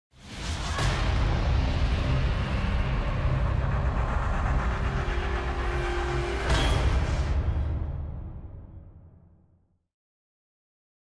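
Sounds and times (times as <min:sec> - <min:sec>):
deep rumbling noise: 0:00.8 - 0:08.9.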